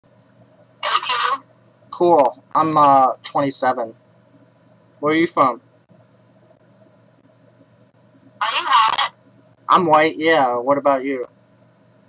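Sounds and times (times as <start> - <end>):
garbled voice over phone line: 0.8 - 1.4, 8.4 - 9.1.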